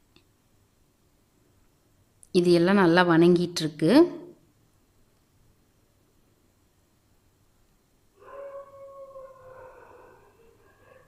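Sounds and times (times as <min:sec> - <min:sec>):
long animal howl: 0:08.2 - 0:11.0.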